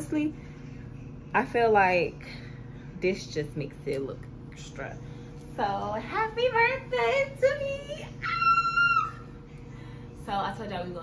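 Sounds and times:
woman squealing: 8.2s - 9.3s.

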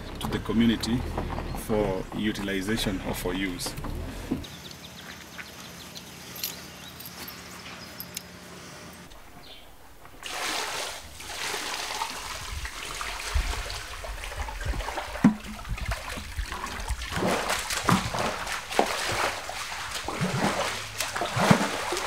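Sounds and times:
paddle sweeping through water: 10.1s - 22.0s
water splashing into tank: 10.2s - 22.0s.

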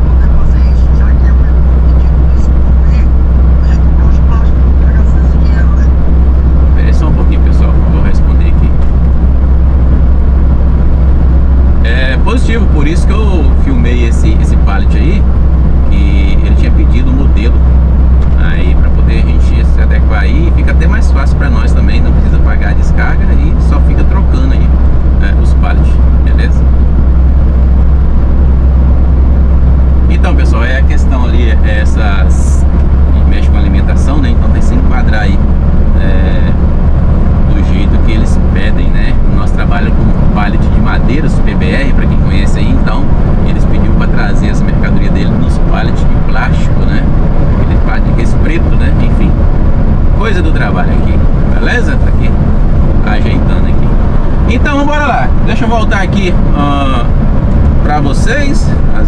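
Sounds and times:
road noise: 0.0s - 59.0s
truck diesel engine drone: 0.0s - 59.0s.

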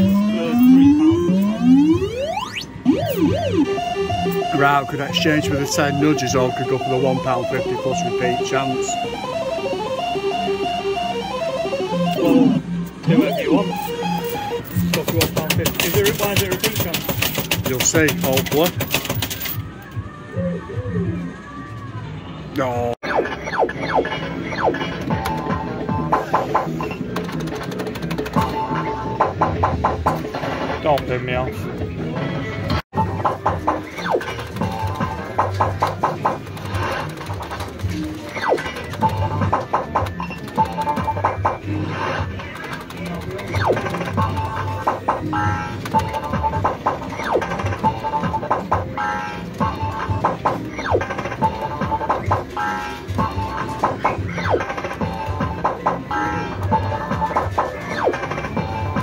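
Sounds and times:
fruit machine bleeps and jingles: 0.0s - 14.6s
rapid clicking: 14.2s - 19.6s, 33.3s - 41.6s, 42.2s - 48.9s.

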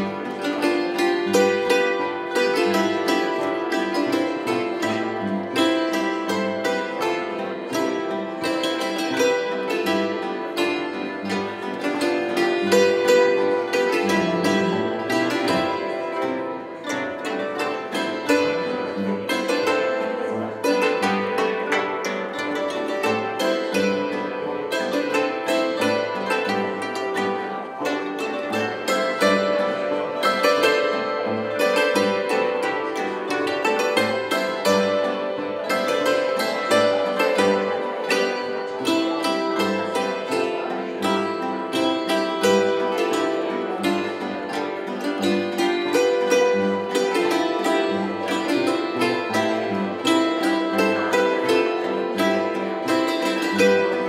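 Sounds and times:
plucked zither folk music: 0.0s - 54.0s.

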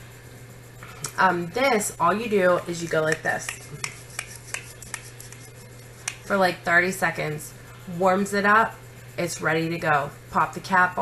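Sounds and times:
soft rubbing of hands: 3.2s - 6.4s.

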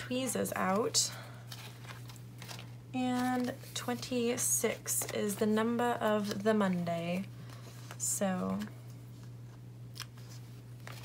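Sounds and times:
steady low hum: 0.0s - 11.0s
paper sheets rustling: 0.7s - 11.0s.

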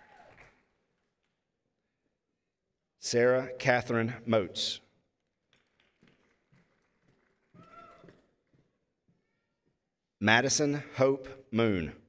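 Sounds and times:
person shouting woo: 7.6s - 8.1s.

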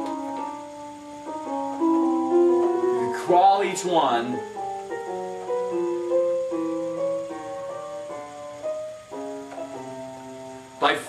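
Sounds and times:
piano playing slow notes: 0.0s - 11.0s.

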